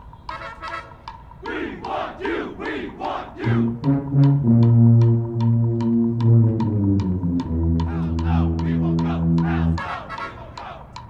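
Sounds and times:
people shouting in unison: 1.4s - 3.6s, 7.9s - 11.0s
brass low chord: 3.4s - 9.8s.

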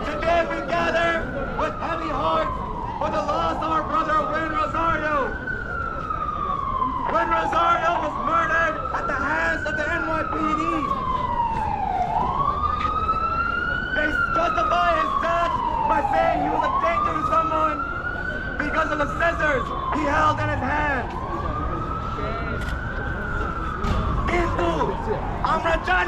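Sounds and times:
crowd chatter: 0.0s - 26.0s
emergency vehicle siren wailing: 0.0s - 26.0s.

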